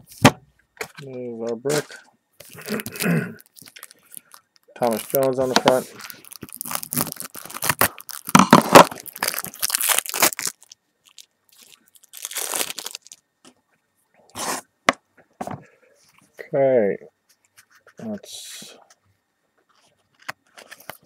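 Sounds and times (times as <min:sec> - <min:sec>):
plastic wrapper tearing and crinkling: 0:02.4 - 0:13.2.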